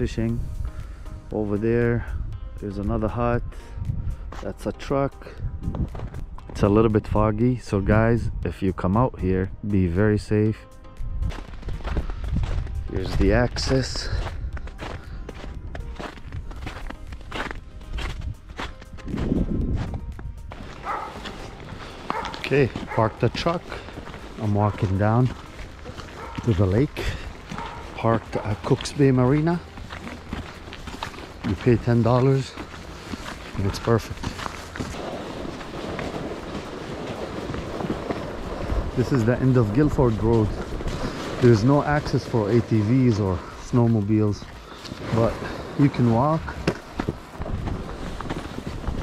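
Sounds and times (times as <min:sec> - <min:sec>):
faint music: 0:00.0 - 0:49.0
footsteps walking: 0:05.6 - 0:06.8, 0:10.9 - 0:49.0.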